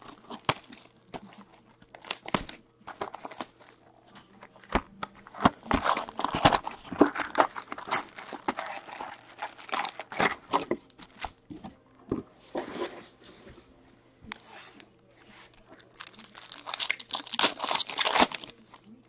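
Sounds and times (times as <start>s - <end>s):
cardboard box opening: 0.0s - 3.8s, 4.5s - 11.4s
foil packs handled: 0.0s - 11.5s, 15.6s - 19.0s
plastic wrap crinkling and tearing: 0.0s - 11.5s, 15.5s - 19.0s.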